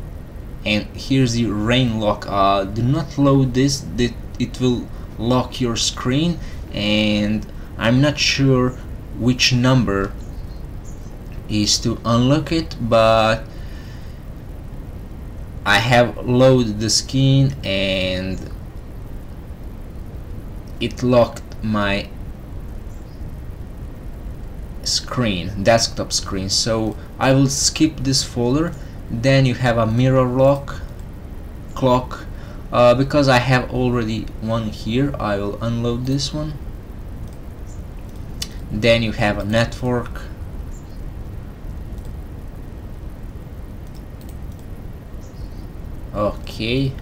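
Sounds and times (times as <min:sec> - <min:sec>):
low background rumble: 0:00.0 - 0:47.0
person speaking: 0:00.6 - 0:10.2, 0:11.2 - 0:13.8, 0:15.6 - 0:18.6, 0:20.7 - 0:22.2, 0:24.8 - 0:31.0, 0:31.7 - 0:36.7, 0:38.2 - 0:40.5, 0:46.0 - 0:47.0
faint mouse clicks: 0:43.8 - 0:44.7.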